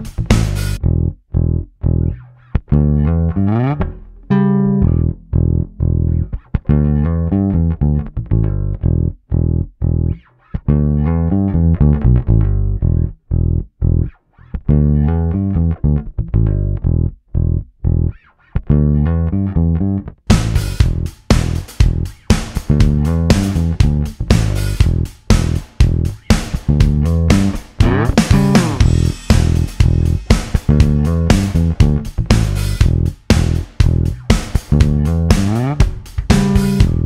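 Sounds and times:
electric bass plucked notes: 0:00.0 - 0:37.0.

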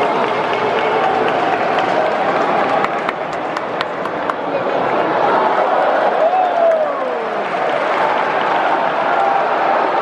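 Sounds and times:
sharp claps: 0:00.0 - 0:04.5
crowd hubbub: 0:00.0 - 0:10.0.

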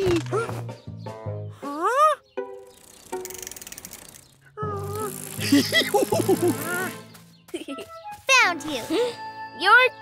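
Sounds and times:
background music: 0:00.0 - 0:03.6, 0:04.5 - 0:10.0
rapid bicycle ticking: 0:02.6 - 0:06.3.

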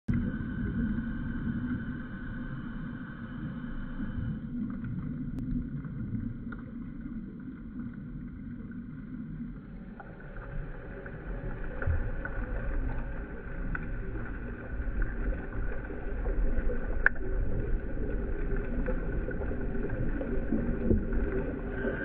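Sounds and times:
low underwater rumble: 0:00.1 - 0:22.0
faint clicks: 0:16.5 - 0:21.6.

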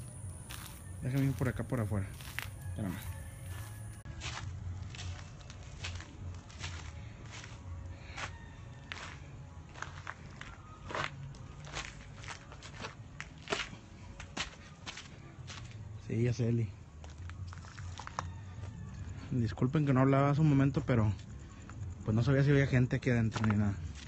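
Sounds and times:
footsteps on gravel: 0:00.0 - 0:15.8, 0:17.0 - 0:18.4, 0:23.3 - 0:24.0.

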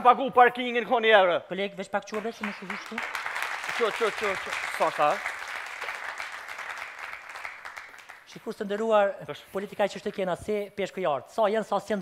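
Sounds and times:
studio audience applauding: 0:02.1 - 0:08.4.

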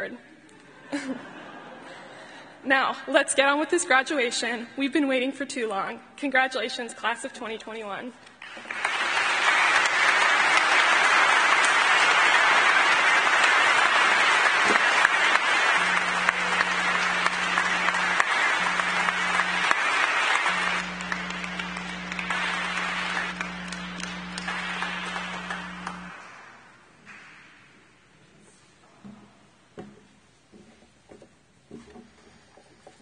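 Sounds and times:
audience applauding: 0:08.4 - 0:27.4.

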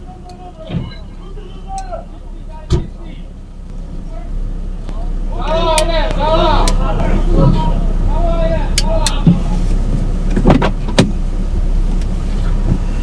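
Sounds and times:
car engine idling: 0:00.0 - 0:13.0
person shouting commands: 0:05.3 - 0:09.4.

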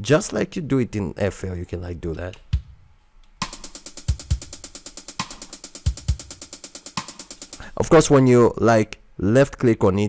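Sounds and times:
closed hi-hat ticking: 0:02.1 - 0:08.1
side stick hits: 0:03.4 - 0:07.6.

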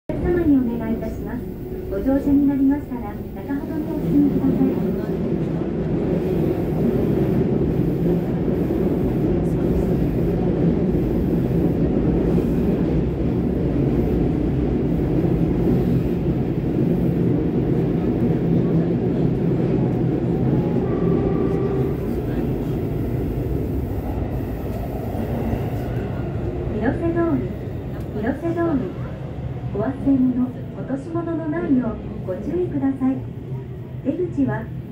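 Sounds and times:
train wheels rumbling on rail: 0:00.1 - 0:34.9.

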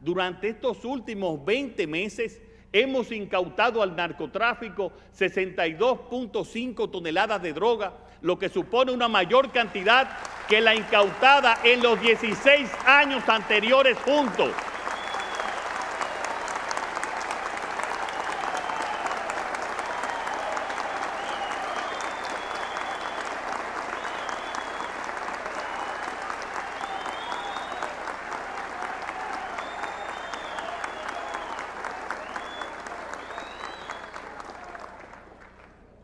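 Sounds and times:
audience applauding: 0:09.3 - 0:35.8.

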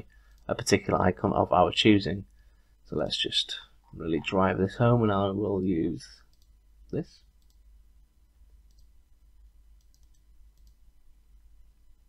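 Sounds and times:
computer mouse clicks: 0:06.3 - 0:06.6, 0:07.3 - 0:07.6, 0:08.6 - 0:08.9, 0:09.8 - 0:10.8.

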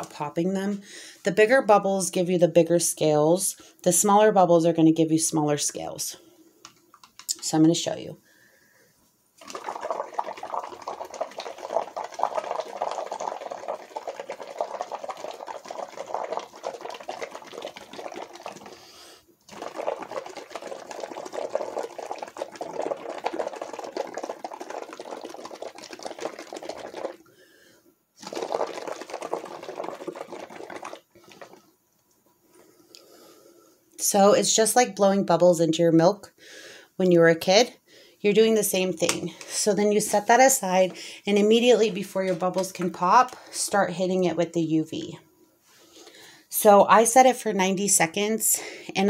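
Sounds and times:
bubbling through a straw: 0:09.4 - 0:27.4, 0:28.2 - 0:31.8.

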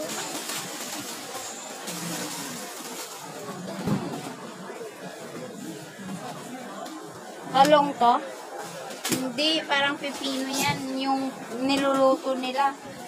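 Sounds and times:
faint distant voices: 0:00.0 - 0:13.0
shop background noise: 0:00.0 - 0:13.0.

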